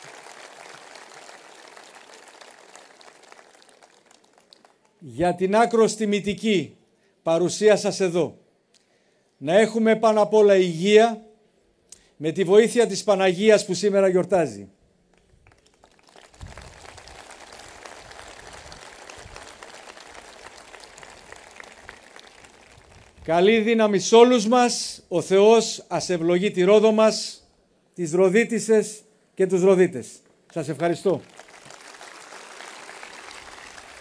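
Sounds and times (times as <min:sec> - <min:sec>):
audience applauding: 0:00.0 - 0:05.0, 0:15.5 - 0:23.2, 0:31.1 - 0:34.0.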